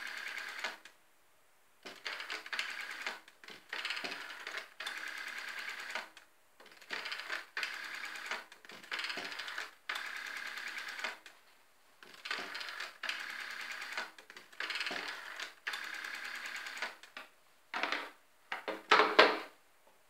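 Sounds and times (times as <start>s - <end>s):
rotary phone dial whirring clicks: 1.9s - 11.3s, 12.1s - 17.1s.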